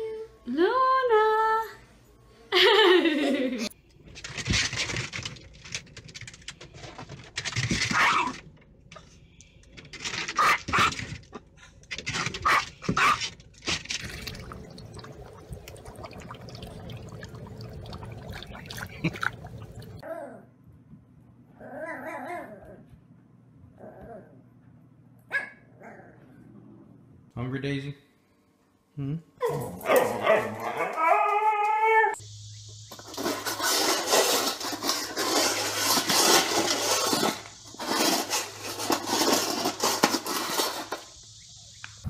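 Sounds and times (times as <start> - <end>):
dog howling: 30.0 - 32.2.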